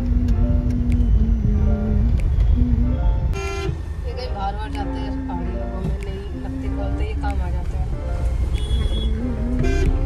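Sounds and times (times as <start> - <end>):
car rumble in traffic: 0.0 - 10.0
vehicle horn toot: 3.4 - 3.8, 8.5 - 10.0.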